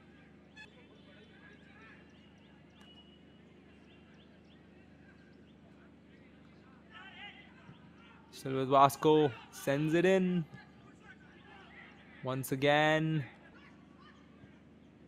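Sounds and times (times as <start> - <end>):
faint field ambience: 0.0 - 15.0
faint distant shout: 6.6 - 12.3.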